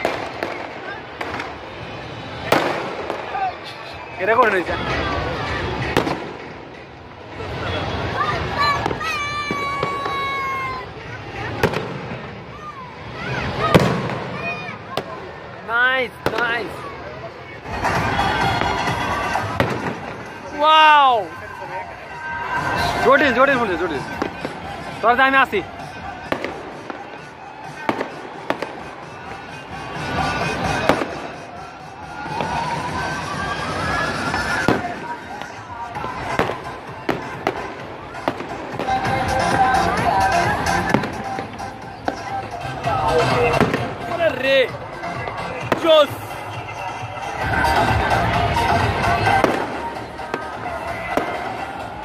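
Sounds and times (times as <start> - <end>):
fireworks bursting: 0.0 - 16.9, 17.6 - 20.7, 24.0 - 46.5, 48.6 - 52.0
fireworks display din: 0.0 - 52.0
spectators calling out: 0.0 - 52.0.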